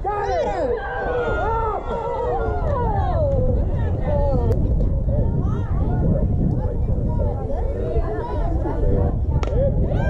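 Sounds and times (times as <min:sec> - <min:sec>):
wind rumble on microphone: 0:00.0 - 0:10.0
young voices calling and cheering: 0:00.0 - 0:10.0.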